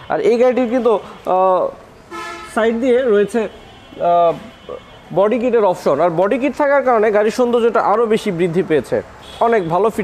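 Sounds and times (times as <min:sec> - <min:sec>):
man speaking: 0:00.0 - 0:01.8, 0:02.4 - 0:10.0
car horn toot: 0:02.1 - 0:05.3.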